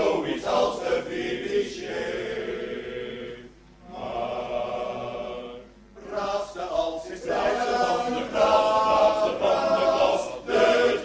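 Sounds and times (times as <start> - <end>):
male choir singing: 0.0 - 11.0.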